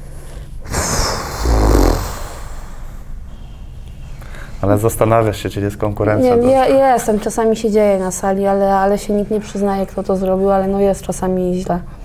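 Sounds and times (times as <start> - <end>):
sharp breath out through nose: 0.0 - 4.6
person humming hmm: 0.7 - 2.6.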